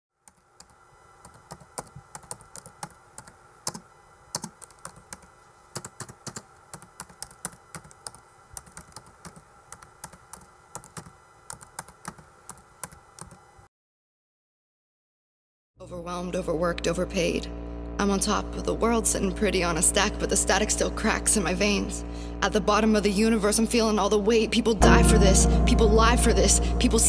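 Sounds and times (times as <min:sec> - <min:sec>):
typing on laptop keyboard: 0:00.2 - 0:13.5
faint steady hum: 0:00.2 - 0:13.7, 0:15.8 - 0:27.0.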